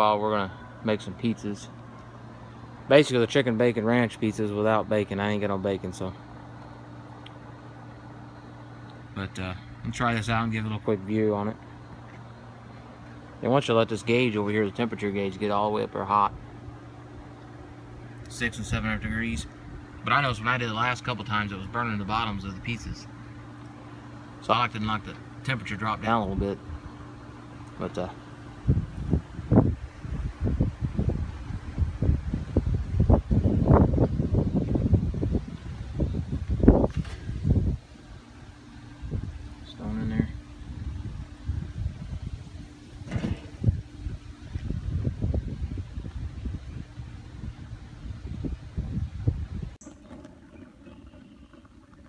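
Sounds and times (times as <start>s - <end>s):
microphone handling rumble: 27.8s - 37.9s, 39.0s - 52.0s
metal knocks and clanks of grill: 43.0s - 43.8s.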